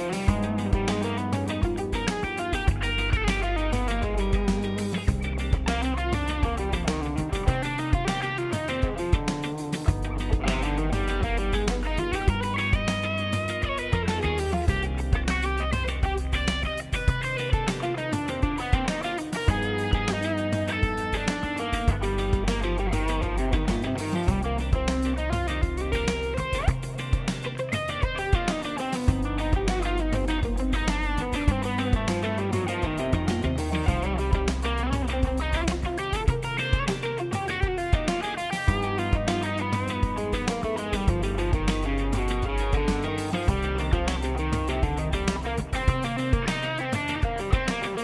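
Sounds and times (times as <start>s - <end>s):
electric guitar runs: 0.0s - 48.0s
jazz-fusion backing track: 0.0s - 48.0s.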